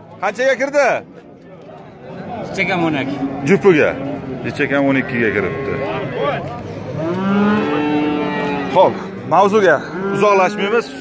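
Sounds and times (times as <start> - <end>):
young bull mooing: 6.9 - 11.0.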